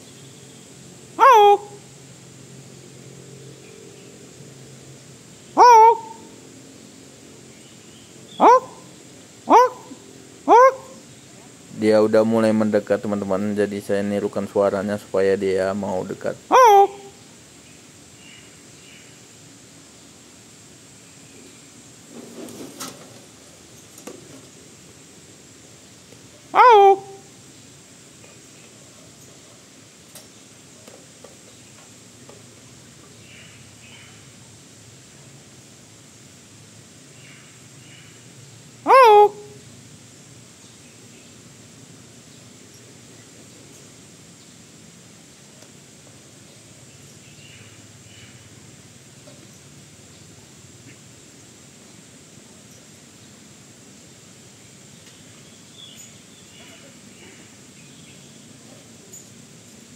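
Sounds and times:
man imitating bird hoot: 0:01.2 - 0:01.8, 0:05.6 - 0:06.3, 0:08.4 - 0:08.8, 0:09.5 - 0:11.0, 0:16.5 - 0:17.2, 0:26.6 - 0:27.3, 0:38.9 - 0:39.6.

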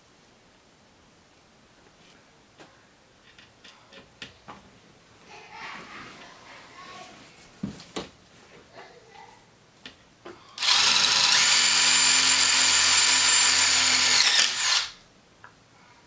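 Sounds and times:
cordless drill driving a screw: 0:10.6 - 0:15.0.

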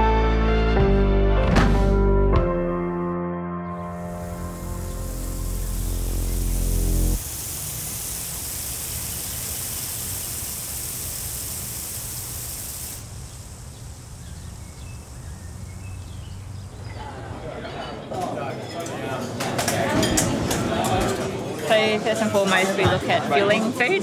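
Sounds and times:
music chord: 0:00.0 - 0:07.2
lawn sprinkler spraying water: 0:03.9 - 0:16.8.

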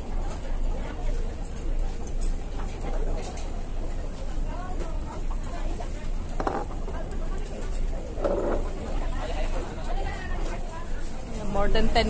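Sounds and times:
diners' voices: 0:00.0 - 0:12.0.

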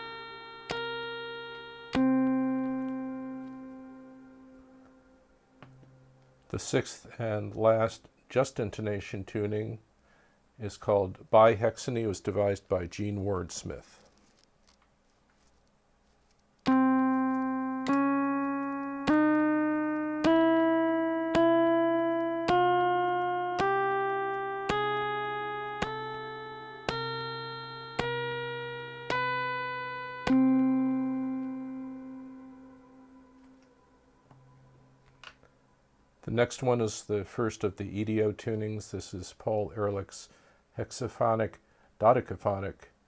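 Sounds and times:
bright plucked resonator tones: 0:00.0 - 0:06.3, 0:16.7 - 0:35.2
low steady tone: 0:00.0 - 0:07.8, 0:16.6 - 0:36.8.

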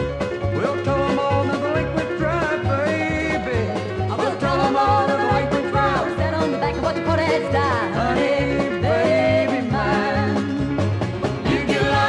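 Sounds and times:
plucked-string country band: 0:00.0 - 0:12.0
sliding lead melody: 0:00.0 - 0:12.0.

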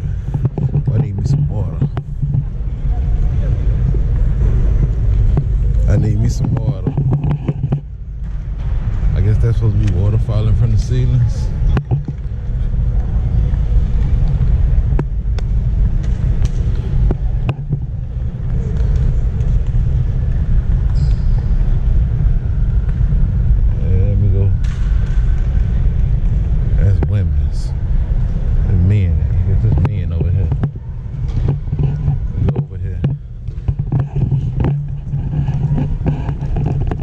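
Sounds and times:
voices: 0:00.0 - 0:07.8, 0:09.1 - 0:14.9, 0:25.5 - 0:36.7
low rumble: 0:00.0 - 0:37.0.

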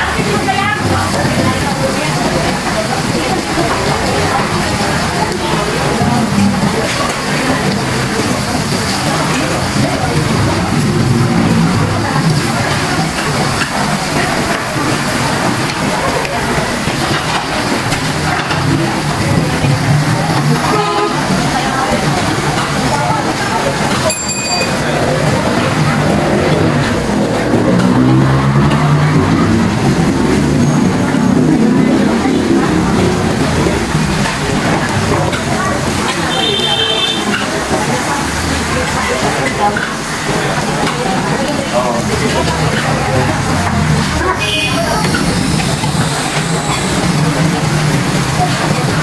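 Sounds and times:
loud chatter of diners: 0:00.0 - 0:49.0.

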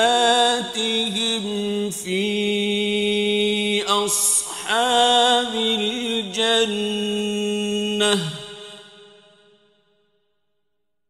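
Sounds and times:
man chanting melodically: 0:00.0 - 0:09.4.

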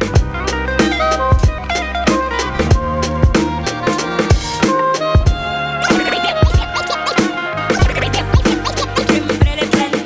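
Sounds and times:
bass line: 0:00.0 - 0:09.8
turntable scratching: 0:05.8 - 0:10.0.

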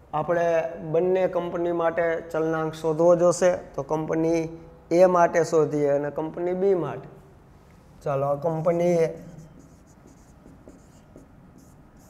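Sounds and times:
man speaking: 0:08.0 - 0:09.6
marker writing on whiteboard: 0:08.4 - 0:12.0.

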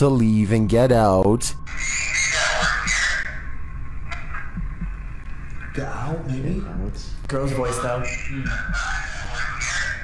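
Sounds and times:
raspy static from small speaker: 0:01.4 - 0:10.0.

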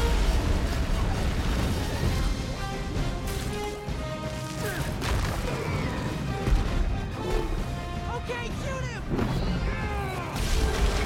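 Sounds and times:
action film score: 0:00.0 - 0:11.0.

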